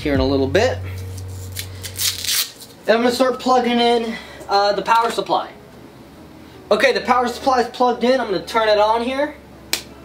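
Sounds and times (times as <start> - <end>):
low steady hum: 0.0 - 10.0
cable rustling: 0.9 - 2.8.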